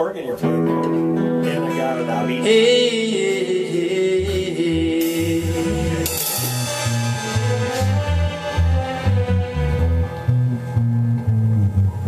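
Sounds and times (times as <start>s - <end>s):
organ-backed song with singing: 1.4s - 10.1s
pulsing low bass beat: 4.2s - 12.0s
cymbal crashes: 5.0s - 10.2s.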